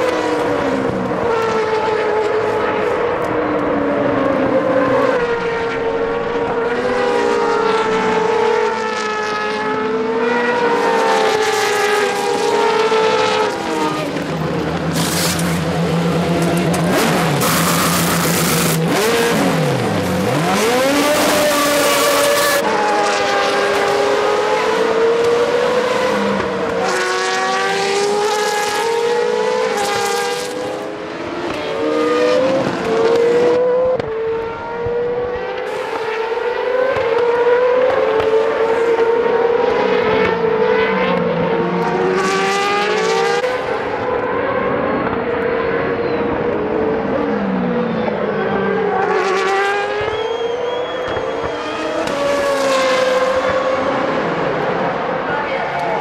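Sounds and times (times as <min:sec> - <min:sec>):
racing car engines revving: 0:00.0 - 0:56.0.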